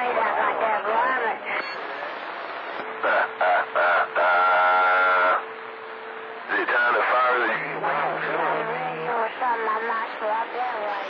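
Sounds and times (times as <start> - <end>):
rooster crowing over radio: 3.0 - 5.4.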